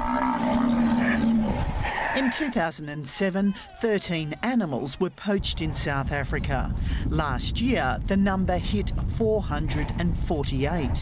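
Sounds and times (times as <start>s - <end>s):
rhino calling: 0.0s - 2.7s.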